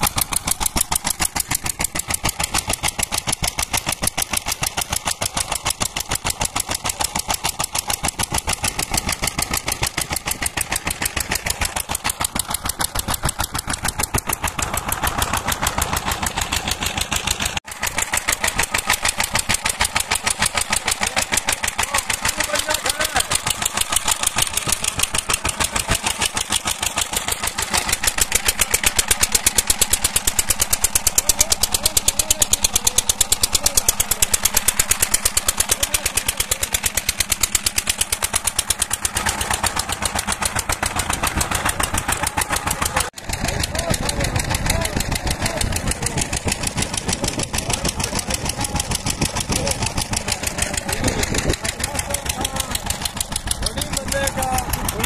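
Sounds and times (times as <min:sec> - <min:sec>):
engine running with fast beat: 0:00.0 - 0:55.0.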